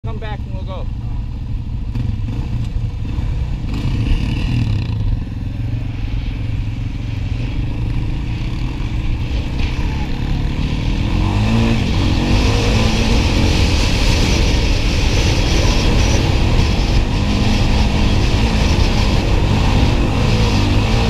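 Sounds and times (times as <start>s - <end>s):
quad engines revving: 1.9s - 21.0s.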